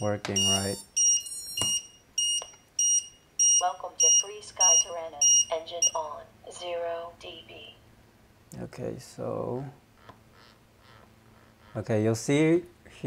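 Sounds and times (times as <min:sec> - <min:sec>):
person speaking: 0:00.0 - 0:00.8
short high electronic beeps: 0:00.0 - 0:06.0.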